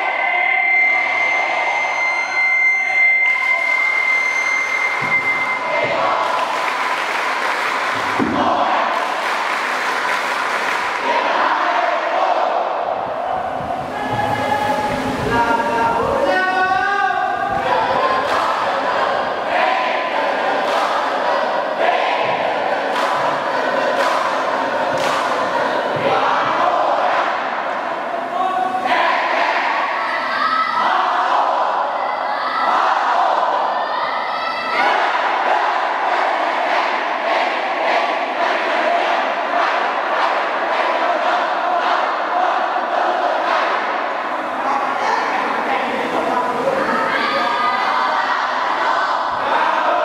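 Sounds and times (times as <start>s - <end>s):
crowd shouting and chanting: 0.0s - 50.0s.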